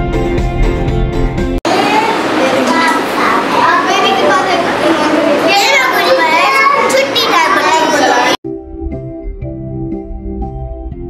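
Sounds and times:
children's voices: 0:01.7 - 0:08.4
girl talking: 0:01.7 - 0:08.4.

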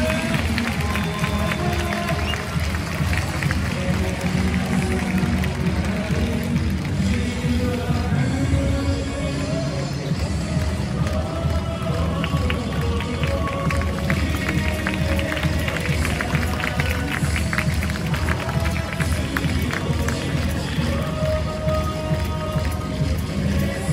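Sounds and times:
hand clapping: 0:00.0 - 0:07.3, 0:10.6 - 0:23.3
music over stadium loudspeakers: 0:00.0 - 0:23.9.

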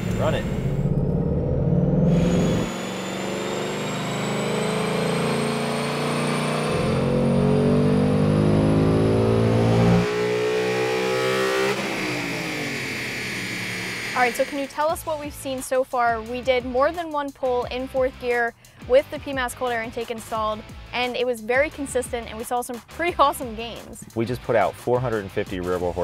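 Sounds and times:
car engine revving on dyno: 0:00.0 - 0:14.7.

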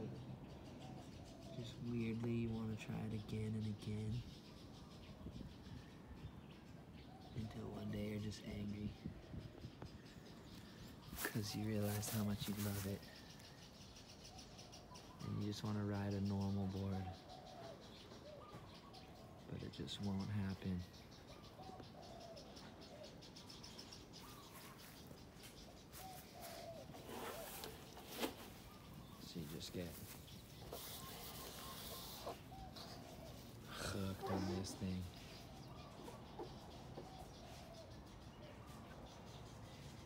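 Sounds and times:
faint birdsong chirping: 0:00.0 - 0:40.0.

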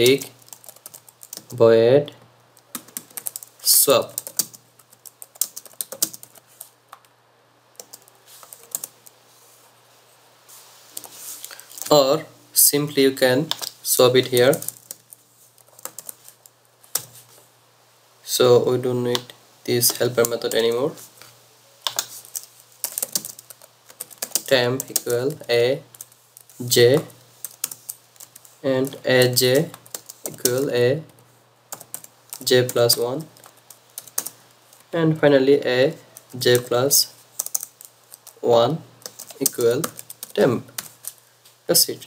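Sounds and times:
computer keyboard typing: 0:00.0 - 0:01.6, 0:02.7 - 0:07.1, 0:07.8 - 0:09.0, 0:13.5 - 0:17.1, 0:21.8 - 0:31.1, 0:31.7 - 0:34.8, 0:35.8 - 0:38.4, 0:39.0 - 0:41.2.

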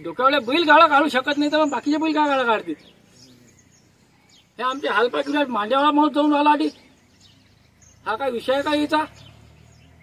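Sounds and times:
man speaking loudly: 0:00.0 - 0:02.8, 0:04.6 - 0:06.8, 0:08.1 - 0:09.2
weak bird chirps: 0:00.0 - 0:10.0.

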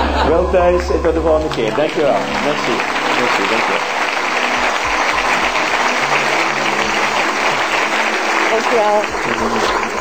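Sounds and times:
music playing: 0:00.0 - 0:10.0
audience applauding: 0:00.7 - 0:10.0.

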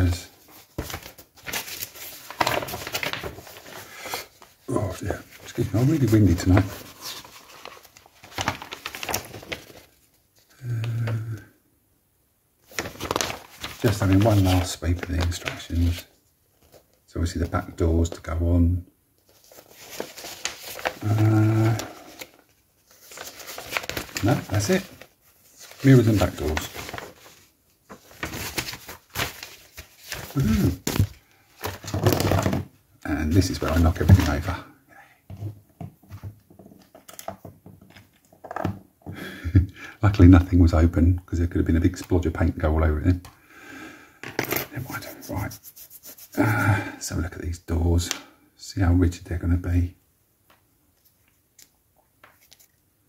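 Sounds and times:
paper pages rustling: 0:00.0 - 0:10.5, 0:12.6 - 0:17.7, 0:19.2 - 0:32.6, 0:33.2 - 0:34.6, 0:44.8 - 0:46.6, 0:51.0 - 0:52.8
person grunting: 0:21.0 - 0:22.0, 0:30.4 - 0:30.9
small items clattering on desk: 0:35.3 - 0:38.8.

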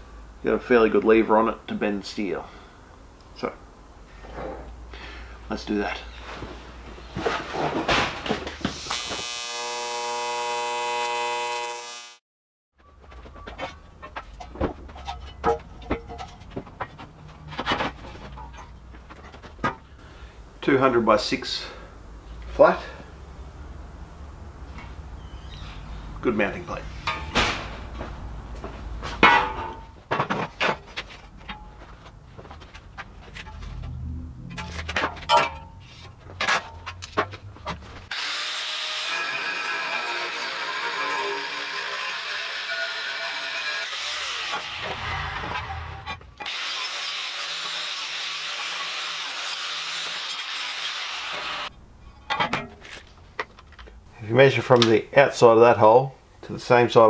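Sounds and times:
angle grinder cutting steel: 0:08.8 - 0:12.2, 0:38.1 - 0:51.7.

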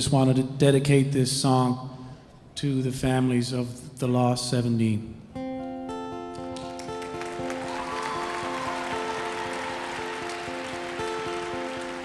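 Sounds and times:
acoustic guitar picking: 0:05.3 - 0:07.6, 0:08.4 - 0:12.0.

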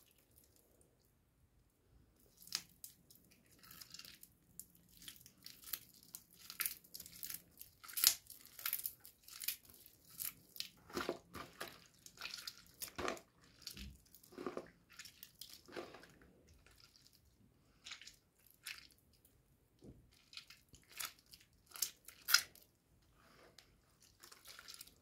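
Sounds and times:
wet soap crackling and squishing: 0:00.0 - 0:25.0.

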